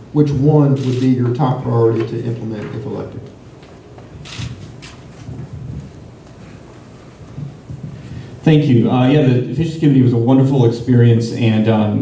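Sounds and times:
microphone handling noise: 0.9 - 8.8.

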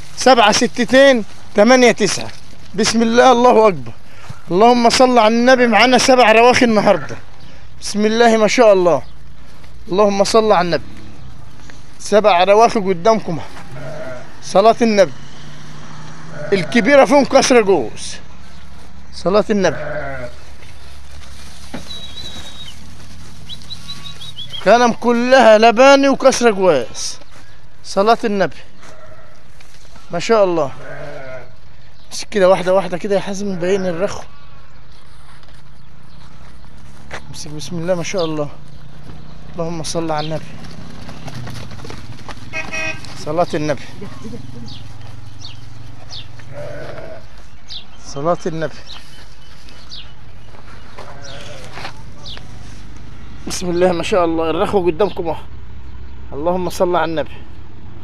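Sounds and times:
sheep bleating: 13.4 - 14.5, 16.2 - 17.2, 19.5 - 20.5, 30.6 - 31.6, 42.5 - 43.3, 46.2 - 47.6, 50.9 - 52.0
small bird chirping: 21.6 - 24.7.

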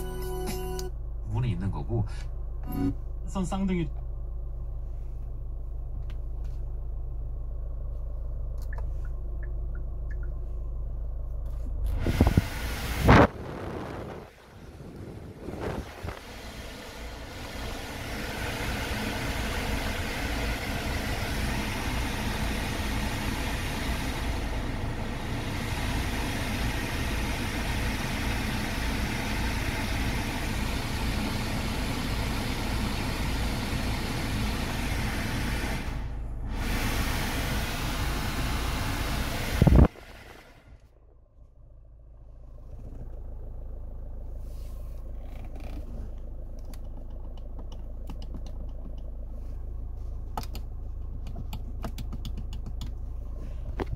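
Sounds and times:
engine idling: 0.0 - 53.9
car blower rushing air: 11.7 - 40.8.

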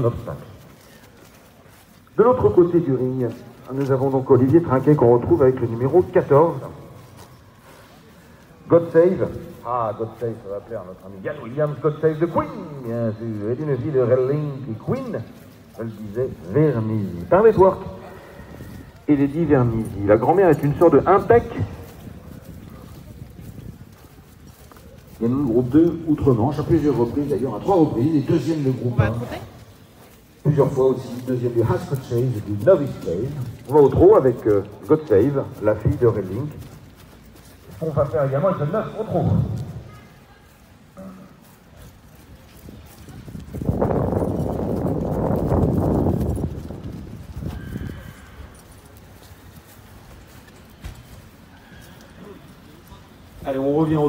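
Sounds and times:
hoofbeats on grass: 0.0 - 54.0
outdoor background noise: 0.0 - 54.0.

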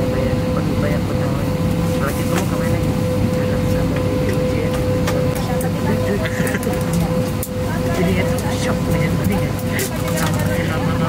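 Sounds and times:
cabin air supply hum: 0.0 - 11.0
constant whining tone: 0.0 - 11.0
murmur of passengers chatting: 0.0 - 11.0.

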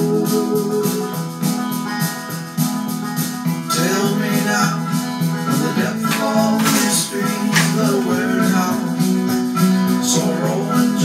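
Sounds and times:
instrumental song with chords: 0.0 - 11.0.

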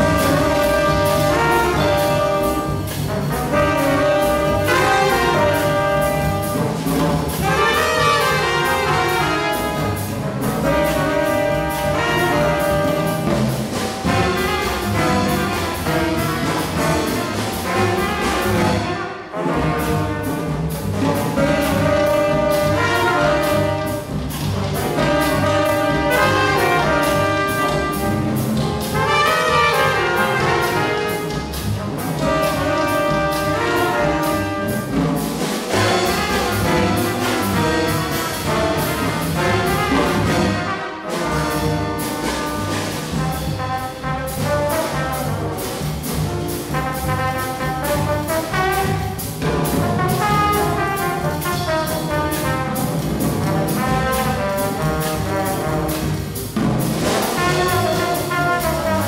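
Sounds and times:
upright bass: 0.0 - 18.8, 19.6 - 40.6
drums: 0.0 - 59.0
jazz horn section: 0.0 - 59.0.

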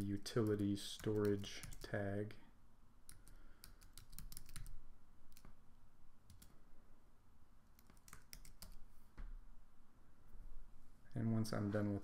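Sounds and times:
computer keyboard typing: 0.3 - 2.0, 3.1 - 5.5, 6.3 - 6.6, 7.7 - 8.9.

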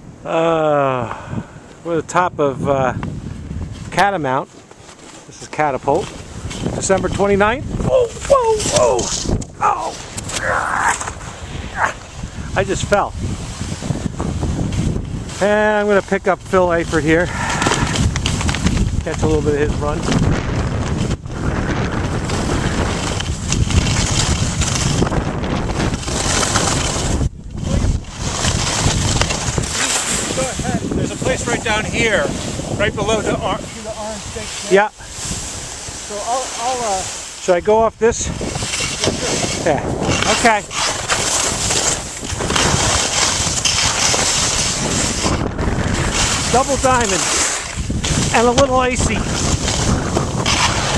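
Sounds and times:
wind rushing over microphone: 0.0 - 4.5, 5.3 - 50.9
skis scraping on snow: 3.7 - 50.9.

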